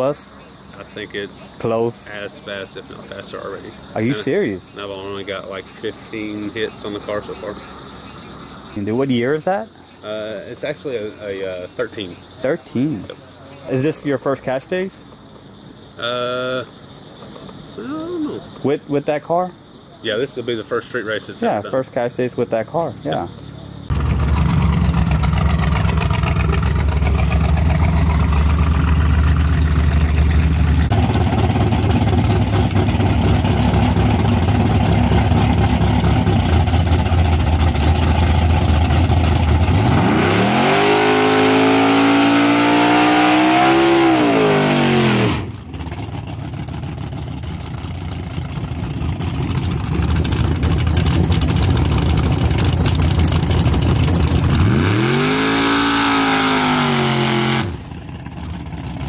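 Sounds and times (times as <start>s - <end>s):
car engines revving: 18.5s - 59.0s.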